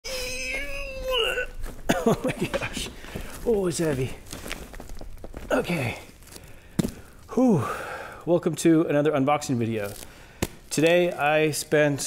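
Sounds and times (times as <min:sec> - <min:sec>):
man straining vocally: 0:00.0 - 0:04.1.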